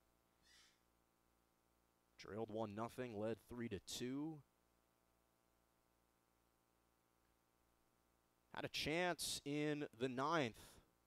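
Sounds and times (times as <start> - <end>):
faint hiss: 0.0 - 2.3.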